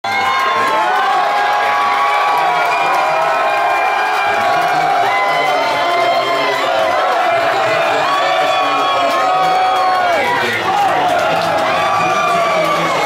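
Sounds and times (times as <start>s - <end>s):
crowd cheering and yelling: 0.0s - 13.0s.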